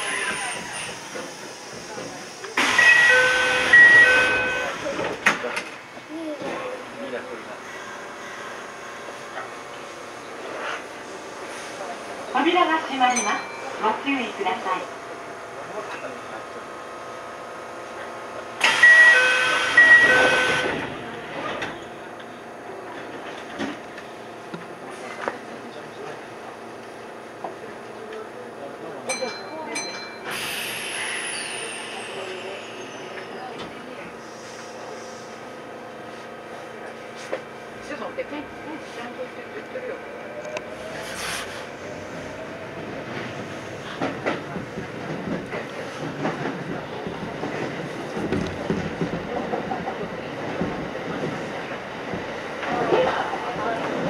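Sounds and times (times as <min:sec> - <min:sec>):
short beeps: 0:02.8 - 0:04.7, 0:18.8 - 0:20.7
train motors whining: 0:17.9 - 0:26.0.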